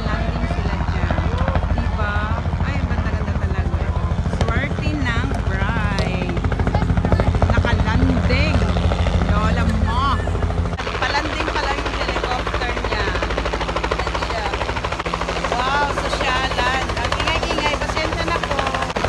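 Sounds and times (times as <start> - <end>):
helicopter rotor chopping: 0.0 - 19.0.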